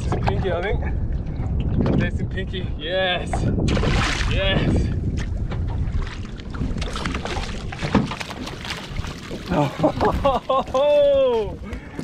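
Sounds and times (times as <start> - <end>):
water slapping boat hull: 0.0 - 2.2, 3.2 - 12.0
wind buffeting microphone: 0.0 - 12.0
landing net splashing into water: 3.7 - 4.3, 6.0 - 10.5.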